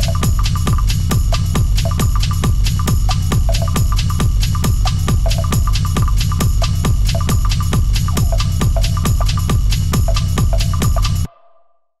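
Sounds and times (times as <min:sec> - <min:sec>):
psytrance music: 0:00.0 - 0:11.3.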